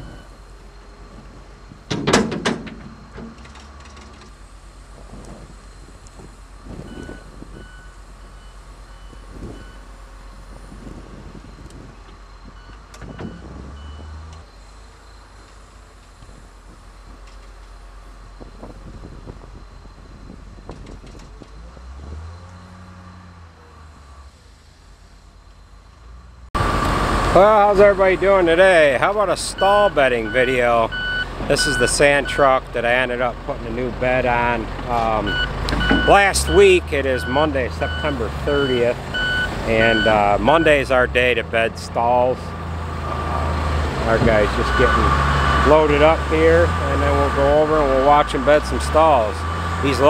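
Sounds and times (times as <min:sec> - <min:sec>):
reversing alarm beeping: 0:00.0 - 0:01.9, 0:06.5 - 0:15.5, 0:29.1 - 0:32.6, 0:35.2 - 0:40.9, 0:44.5 - 0:46.4
heavy diesel equipment rumbling: 0:00.0 - 0:50.0.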